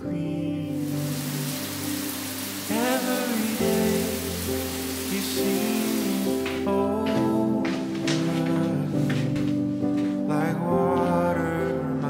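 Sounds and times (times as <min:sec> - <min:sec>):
background music: 0:00.0 - 0:12.0
shower water spray hissing: 0:00.8 - 0:06.7.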